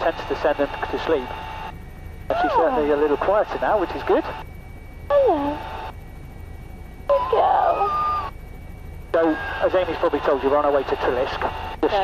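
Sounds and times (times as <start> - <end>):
helicopter cabin hum: 0.0 - 12.0.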